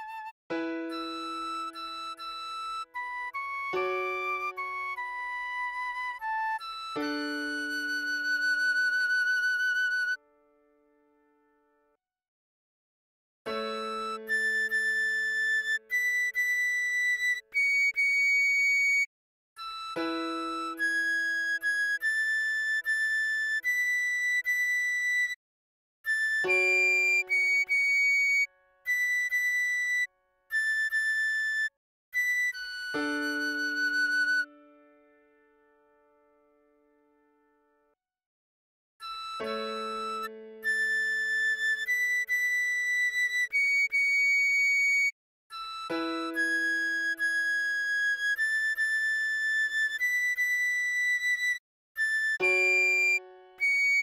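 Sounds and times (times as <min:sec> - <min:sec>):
recorder melody: 0:26.1 - 0:34.9, 0:39.0 - 0:54.0.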